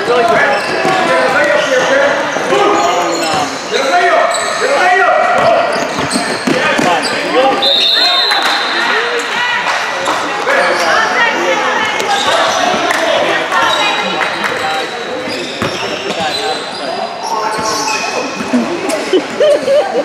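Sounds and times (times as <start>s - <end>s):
sneakers squeaking on court: 0.0s - 7.8s, 11.9s - 12.9s, 13.6s - 19.8s
players' voices: 0.0s - 20.0s
high whistle: 7.6s - 8.6s
basketball bouncing: 15.6s - 15.8s.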